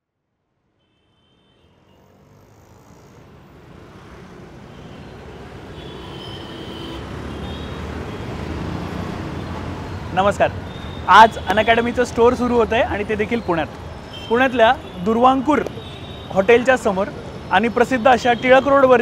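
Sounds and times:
busy street traffic: 0.6s - 19.0s.

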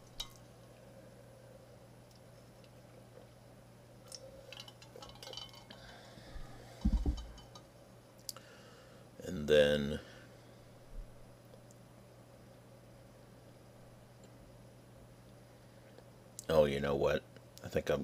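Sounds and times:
steady low hum: 0.0s - 18.0s
low thump: 6.8s - 7.3s.

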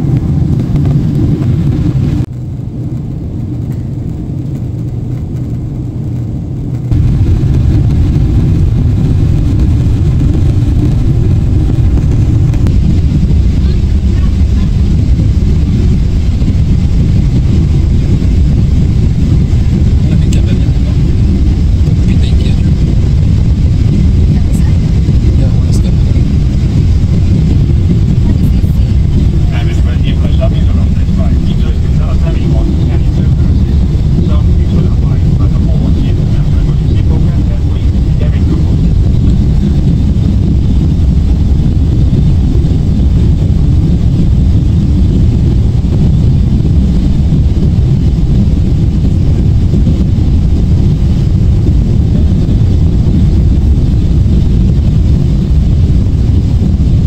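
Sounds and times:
jet engines rumbling in cabin: 0.0s - 57.0s
rushing air: 0.0s - 57.0s.

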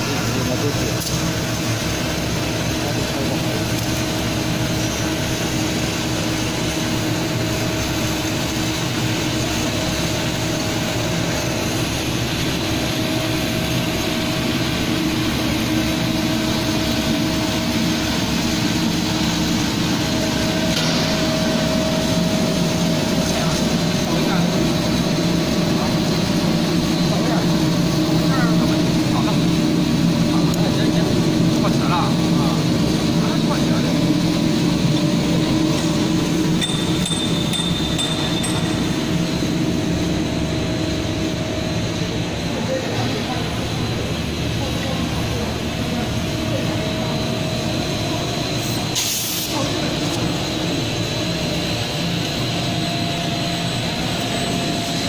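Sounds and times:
machine hum and rush: 0.0s - 55.0s.

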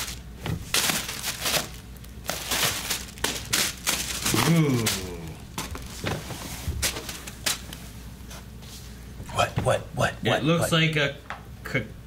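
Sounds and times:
plastic bags crinkling: 0.0s - 7.8s.

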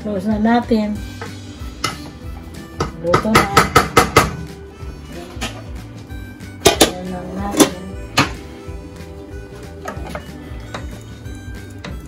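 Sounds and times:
background music held notes: 0.0s - 12.0s
wooden spoon knocking metal pot: 2.7s - 4.4s, 6.6s - 8.4s.

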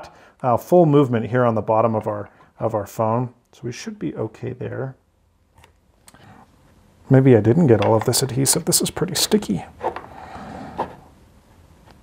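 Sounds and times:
plastic tool scraping: 9.8s - 11.1s.

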